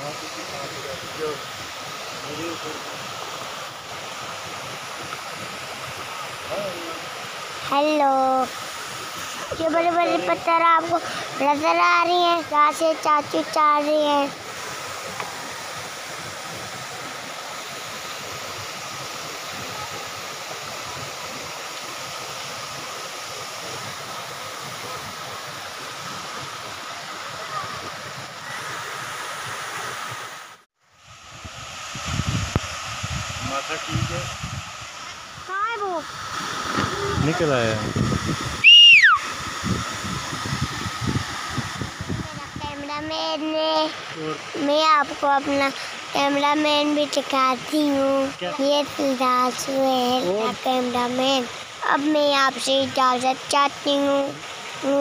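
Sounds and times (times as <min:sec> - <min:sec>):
water rushing over rocks: 0:00.0 - 0:55.0
whistle sliding down in pitch: 0:38.6 - 0:39.3.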